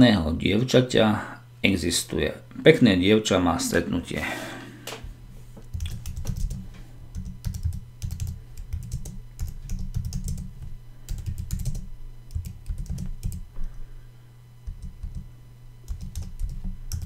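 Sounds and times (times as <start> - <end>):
low hum: 1.1 - 17.0
typing on computer keyboard: 5.7 - 6.6, 7.2 - 10.5, 11.1 - 13.4, 14.7 - 15.2, 15.9 - 17.0.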